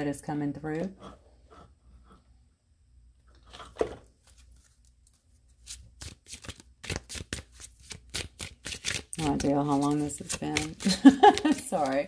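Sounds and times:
cards being shuffled: 4.2s - 12.0s.

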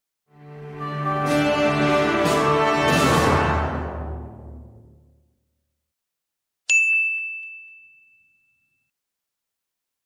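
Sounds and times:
music: 0.3s - 5.7s
bright ding: 6.7s - 8.9s.

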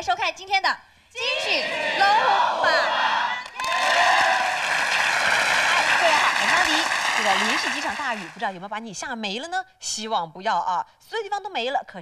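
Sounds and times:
audience clapping and cheering: 2.9s - 8.6s.

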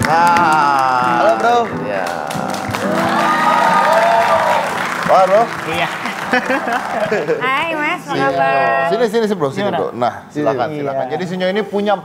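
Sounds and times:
audience applauding and cheering: 0.0s - 8.2s
background music: 0.0s - 12.0s.

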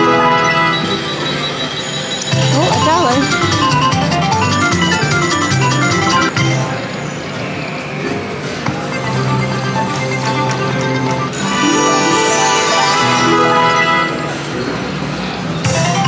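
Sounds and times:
chiming notes: 0.0s - 6.6s
electronic game music: 0.0s - 6.7s, 15.6s - 16.0s.

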